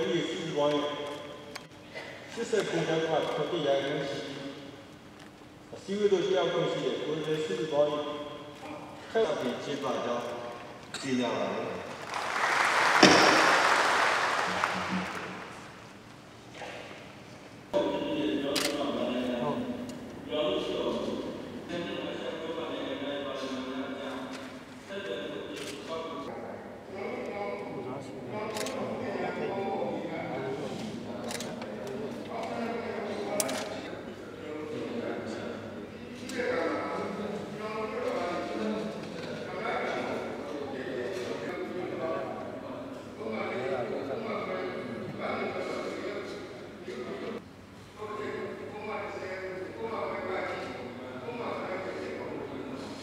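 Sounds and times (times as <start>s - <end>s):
man speaking through microphone: 0.0s - 1.6s, 2.3s - 4.8s, 5.6s - 11.9s, 17.7s - 47.4s, 48.0s - 53.0s
audience applause in a hall: 11.8s - 15.8s
sharp knock: 13.0s - 13.6s.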